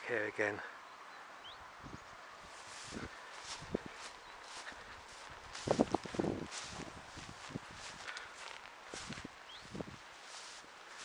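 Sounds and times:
footsteps on rough ground: 0:02.4 - 0:11.0.

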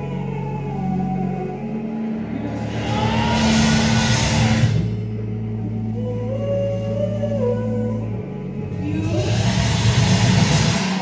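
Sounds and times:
low guitar drone: 0:00.0 - 0:11.0
drums and cymbals: 0:02.7 - 0:04.8, 0:09.0 - 0:11.0
distorted electric guitar music: 0:09.2 - 0:11.0.

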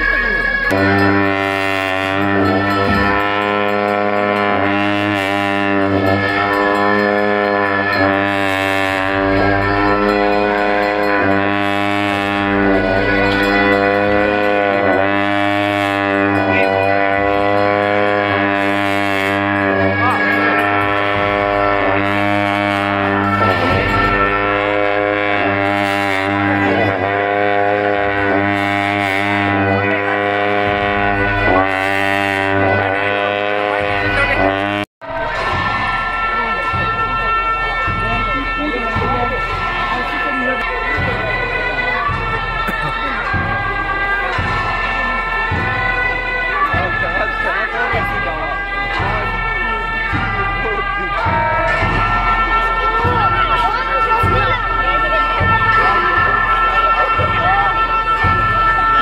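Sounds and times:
cymbals crashing: 0:00.0 - 0:59.0
long horns droning: 0:00.0 - 0:59.0.

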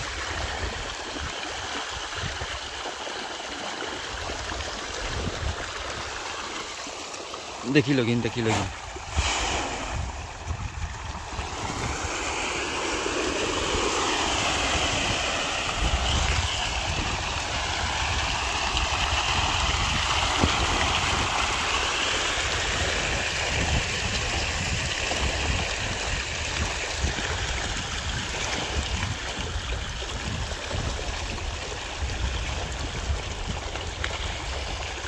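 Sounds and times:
fish splashing at water surface: 0:00.0 - 0:35.0.

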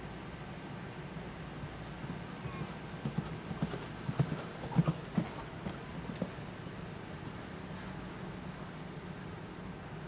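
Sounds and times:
horse hoofbeats cantering on sand: 0:02.0 - 0:06.5.

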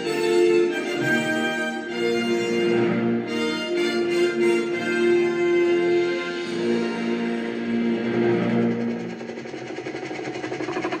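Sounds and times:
fast mechanical pulsing: 0:07.8 - 0:11.0.

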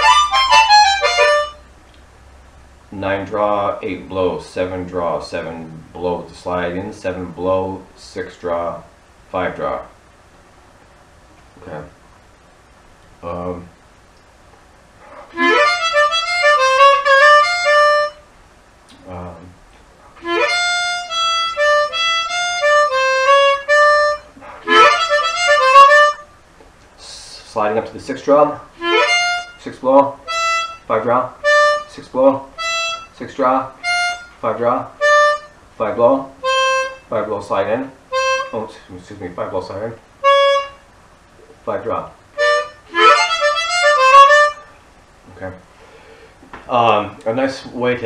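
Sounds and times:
harmonica blues run: 0:00.0 - 0:01.7, 0:15.1 - 0:18.2, 0:20.2 - 0:26.3, 0:28.8 - 0:35.6, 0:36.4 - 0:37.1, 0:38.1 - 0:38.8, 0:40.2 - 0:40.9, 0:42.4 - 0:44.8
person speaking: 0:02.9 - 0:10.0, 0:11.6 - 0:12.0, 0:13.2 - 0:13.8, 0:18.9 - 0:19.6, 0:27.0 - 0:30.2, 0:30.9 - 0:32.5, 0:33.1 - 0:33.8, 0:34.4 - 0:35.0, 0:35.8 - 0:36.4, 0:37.0 - 0:40.0, 0:45.3 - 0:45.7, 0:46.6 - 0:48.0.

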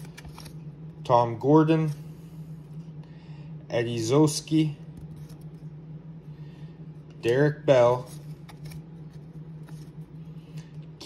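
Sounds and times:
cards sliding: 0:00.0 - 0:00.6, 0:08.0 - 0:10.1
steady low hum: 0:00.0 - 0:11.0.

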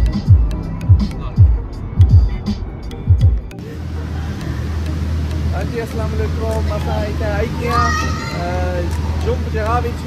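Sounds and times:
voices: 0:03.6 - 0:10.0.

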